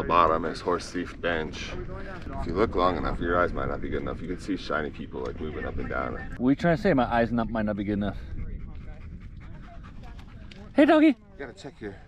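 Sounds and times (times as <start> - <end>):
dog panting: 7.5 - 11.2.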